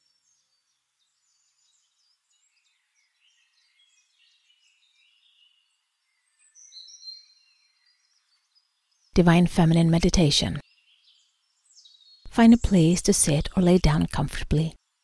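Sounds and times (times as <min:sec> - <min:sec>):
faint birdsong: 0:00.0 - 0:15.0.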